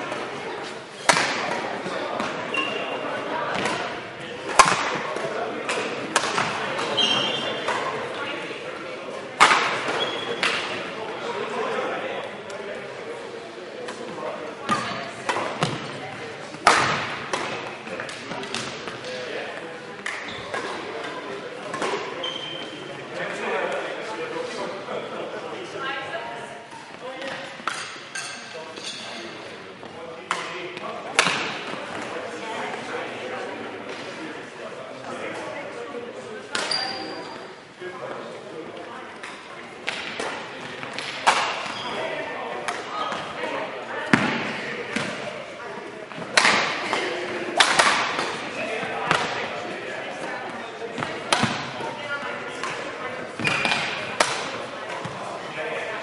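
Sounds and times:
murmur of voices: 0.0 - 56.0
rackets hitting shuttlecock: 1.0 - 2.8, 3.5 - 8.2, 9.4 - 10.8, 13.9 - 22.1, 30.3 - 32.1, 39.2 - 41.8, 42.6 - 43.3, 46.2 - 49.6, 50.2 - 51.8, 52.6 - 55.2
shoes squeaking on court: 2.4 - 3.1, 6.8 - 7.8, 9.9 - 10.5, 21.8 - 22.9, 36.6 - 37.5, 41.5 - 42.1, 53.4 - 54.0.

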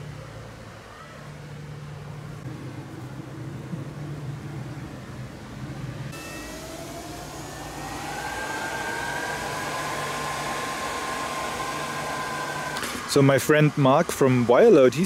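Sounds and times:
charging electronics whining: 2.4 - 15.0.

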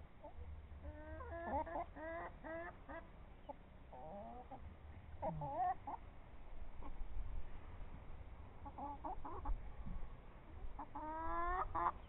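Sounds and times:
chickens clucking: 0.2 - 6.1, 6.8 - 7.0, 8.6 - 12.0.

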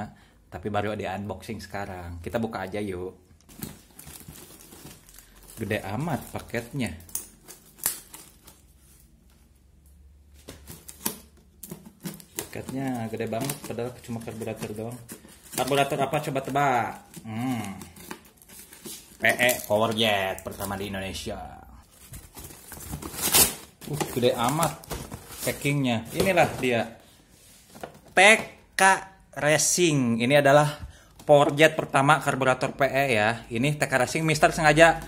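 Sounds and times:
cardboard parcel taps and rustles: 22.0 - 26.8.

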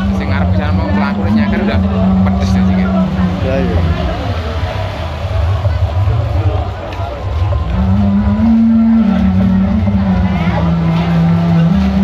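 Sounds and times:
sound-system music with heavy bass: 0.0 - 12.0.

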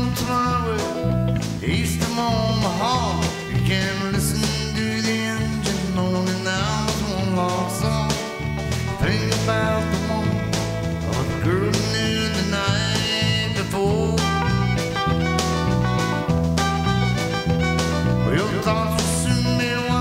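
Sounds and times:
bass guitar: 0.0 - 20.0
drums: 0.0 - 20.0
electric guitar: 0.0 - 20.0.

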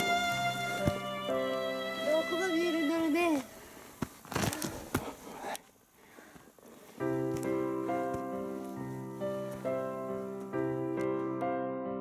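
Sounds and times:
clothing and gear rustling: 3.3 - 11.3.

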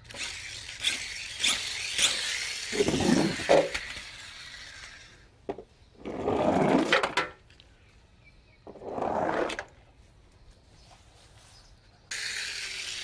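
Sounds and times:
toy cars rolling on cardboard: 0.0 - 7.6, 8.7 - 9.8, 12.1 - 13.0.

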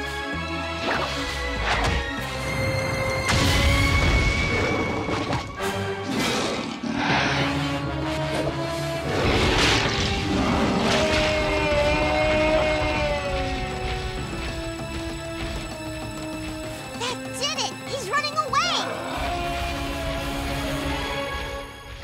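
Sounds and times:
cartoon orchestral music: 15.4 - 21.7.

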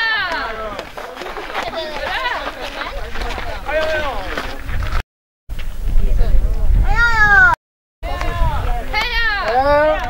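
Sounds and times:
wind rumbling on microphone: 1.5 - 10.0.

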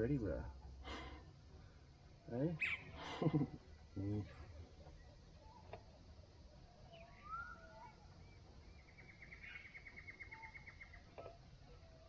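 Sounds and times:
bird gliding whistle: 7.0 - 7.8.

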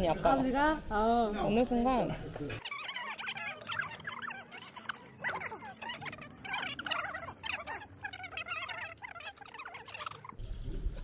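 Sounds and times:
small birds chirping: 2.6 - 10.9.

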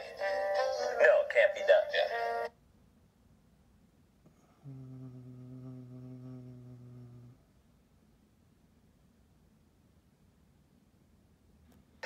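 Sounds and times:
music: 0.0 - 2.5
steady low tone: 4.4 - 7.5.

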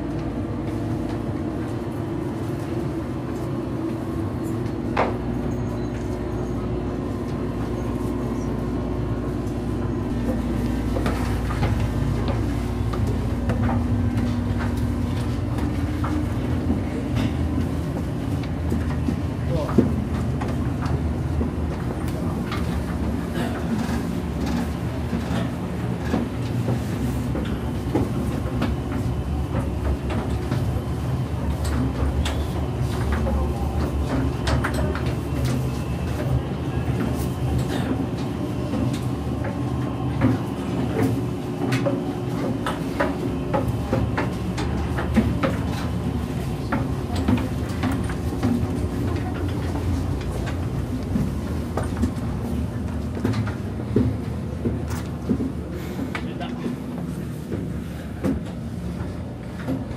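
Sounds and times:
machinery and ventilation hum: 0.0 - 59.9
footsteps: 10.1 - 59.9.

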